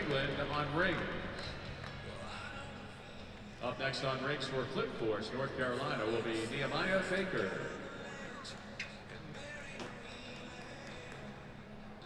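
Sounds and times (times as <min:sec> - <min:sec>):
hum of echoing hall: 0:00.0 - 0:12.0.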